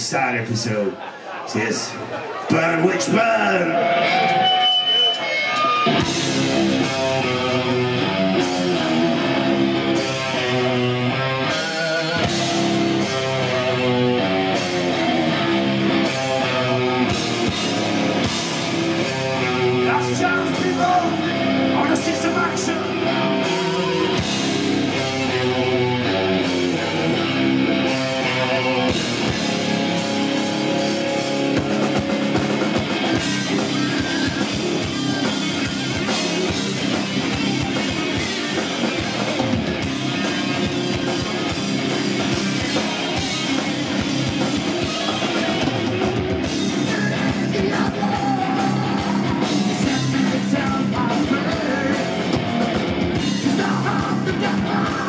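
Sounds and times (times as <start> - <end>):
heavy metal band playing live: 0.0 - 55.0
electric guitar: 2.1 - 55.0.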